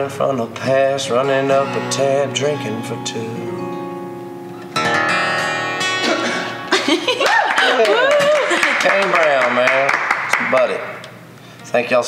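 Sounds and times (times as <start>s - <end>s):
acoustic guitar strumming: 0.0s - 7.6s.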